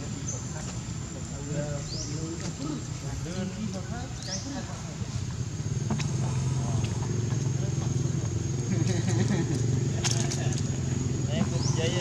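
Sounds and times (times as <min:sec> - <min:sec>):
vehicle engine humming: 0:00.0 - 0:12.0.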